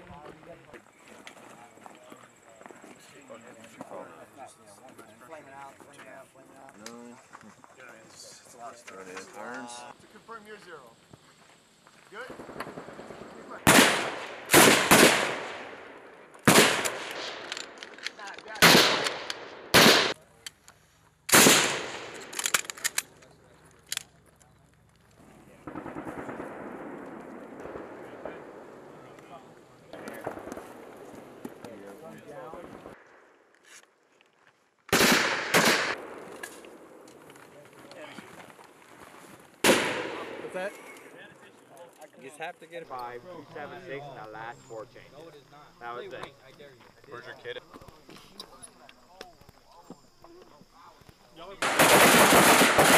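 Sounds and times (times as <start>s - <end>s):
steady background noise: 0.0s - 33.6s
machine gun bursts: 51.6s - 52.9s.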